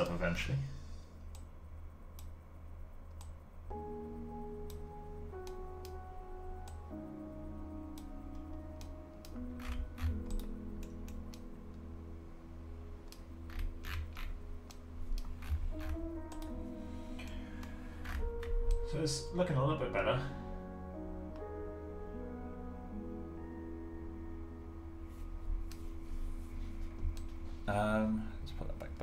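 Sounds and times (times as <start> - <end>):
steady low hum: 0.0 - 23.4, 24.1 - 29.0
slow sustained chords music: 0.0 - 29.0.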